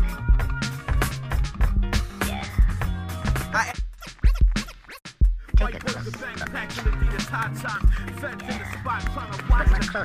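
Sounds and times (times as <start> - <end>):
hip hop beat: 0.0 - 10.0
turntable scratching: 2.2 - 10.0
bass line: 5.6 - 10.0.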